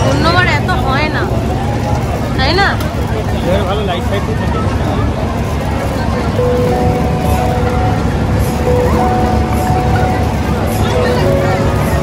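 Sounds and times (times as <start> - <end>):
fairground ride machinery rumbling: 0.0 - 12.0
people's voices: 0.0 - 12.0.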